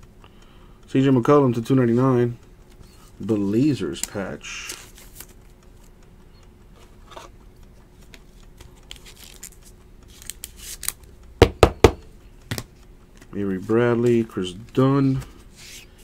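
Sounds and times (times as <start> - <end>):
cards rustling and sliding: 2.8 - 5.9, 6.8 - 11.1, 12.5 - 16.0.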